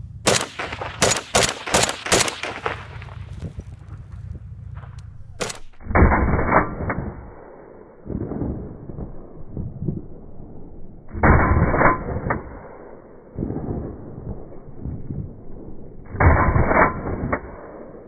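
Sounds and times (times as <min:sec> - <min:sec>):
rifle shots: 0:00.2 - 0:03.5, 0:04.6 - 0:09.1
muffled gunfire: 0:00.2 - 0:08.8.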